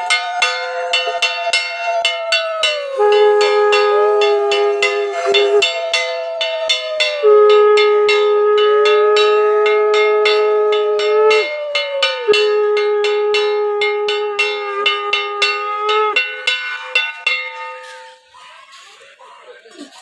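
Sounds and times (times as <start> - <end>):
conch shells blown: 0.0 - 18.2
fast strikes on metal bell: 0.0 - 18.2.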